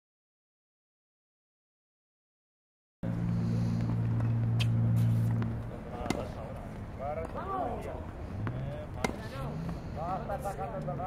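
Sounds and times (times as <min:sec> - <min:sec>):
low motor hum: 0:03.0 - 0:11.0
tennis ball strikes: 0:04.0 - 0:07.6, 0:08.4 - 0:09.5
voices: 0:05.6 - 0:11.0.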